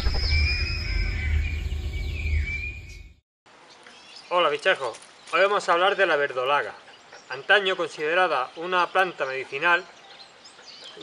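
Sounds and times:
faint outdoor background: 0:00.0 - 0:11.0.

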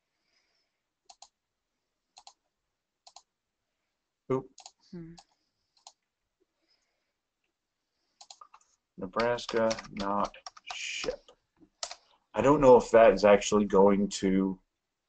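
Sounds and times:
computer mouse clicks: 0:01.1 - 0:01.4, 0:02.2 - 0:02.4, 0:03.0 - 0:03.3, 0:04.6 - 0:06.1, 0:08.2 - 0:12.1
keyboard keystrokes: 0:08.2 - 0:12.0.

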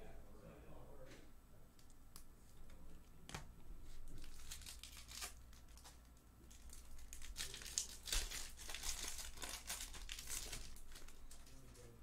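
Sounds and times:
foil wrapper crinkling and tearing: 0:04.0 - 0:12.0.

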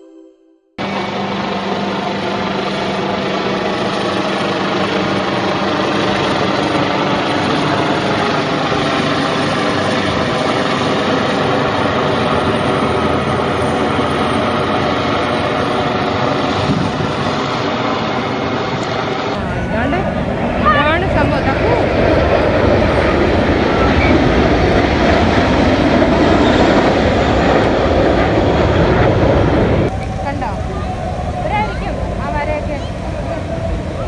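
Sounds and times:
helicopter rotor and engine: 0:00.8 - 0:34.0.

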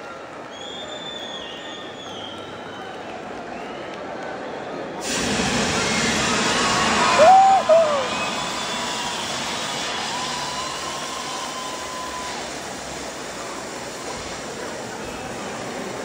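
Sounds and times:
crowd cheering: 0:00.0 - 0:16.0
confetti cannons hissing: 0:05.0 - 0:16.0
person whooping: 0:05.8 - 0:12.4.

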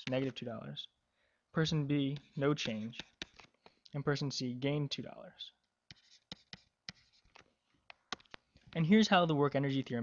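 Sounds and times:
stylus tapping on pen tablet: 0:02.2 - 0:03.5, 0:05.9 - 0:08.5.

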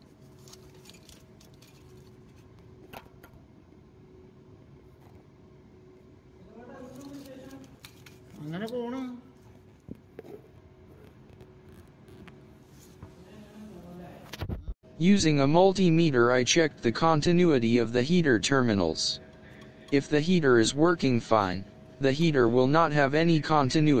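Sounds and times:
steady low hum: 0:00.0 - 0:24.0
wiring and connectors rattling: 0:00.3 - 0:03.2
voice: 0:13.3 - 0:19.2, 0:19.9 - 0:24.0.

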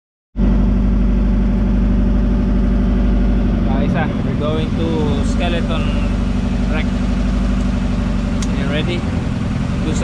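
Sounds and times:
boat engine droning: 0:00.4 - 0:10.0.

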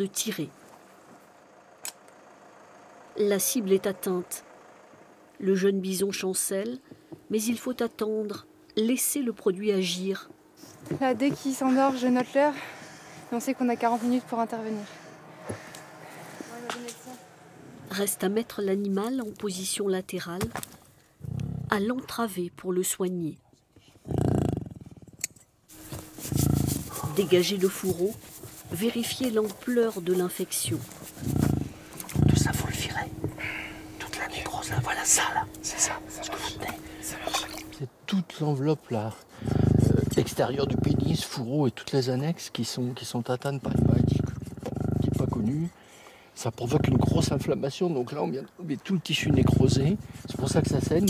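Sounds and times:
bison low rattling groan: 0:26.1 - 0:27.6, 0:30.5 - 0:37.7, 0:39.4 - 0:41.3, 0:43.6 - 0:45.5, 0:46.6 - 0:47.5, 0:49.2 - 0:51.0.

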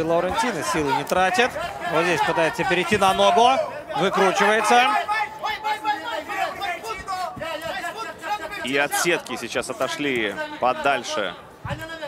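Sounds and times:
men talking indistinctly: 0:00.0 - 0:12.0.

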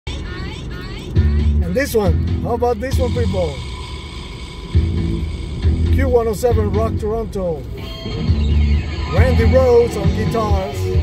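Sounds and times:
rock music on car radio: 0:00.1 - 0:11.0
heavy low notes: 0:01.2 - 0:11.0.

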